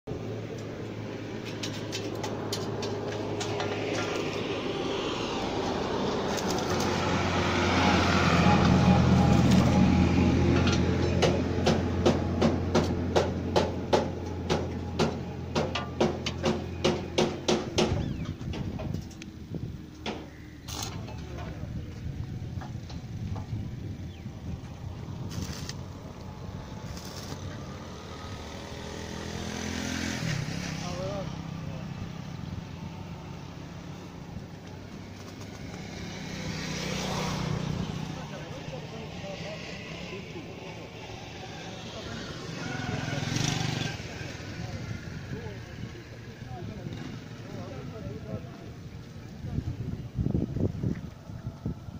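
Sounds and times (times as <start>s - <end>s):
tractor engine drone: 0.1s - 51.9s
sharp metallic knocks: 10.5s - 19.1s.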